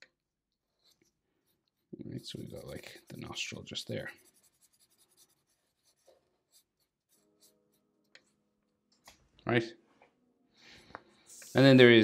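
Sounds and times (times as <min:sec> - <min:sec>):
marker strokes on paper: 0:00.7 - 0:08.4, 0:11.2 - 0:12.0.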